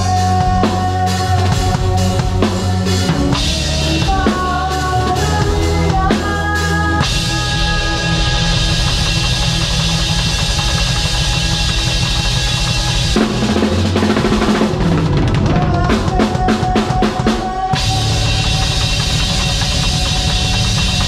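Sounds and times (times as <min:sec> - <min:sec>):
band holding chords: 0:00.0 - 0:21.0
drum kit playing: 0:00.0 - 0:21.0.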